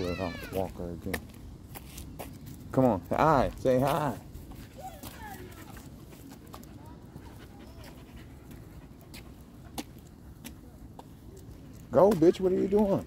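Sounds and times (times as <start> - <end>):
dog panting: 4.6 - 13.0.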